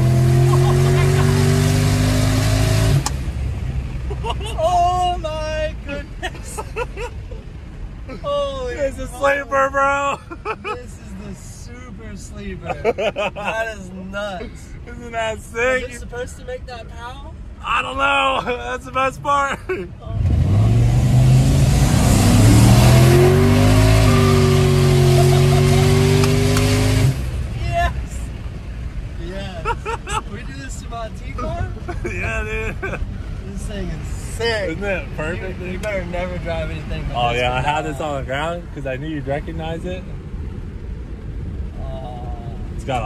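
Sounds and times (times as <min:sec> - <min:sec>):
car engine accelerating hard: 0:00.0 - 0:04.2, 0:20.1 - 0:27.6
air and road noise: 0:00.0 - 0:43.0
car engine rumbling: 0:00.0 - 0:43.0.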